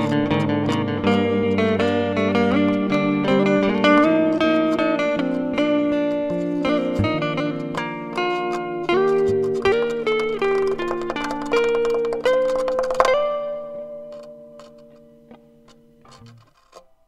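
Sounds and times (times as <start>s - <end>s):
solo guitar plucked notes: 0.0s - 17.0s.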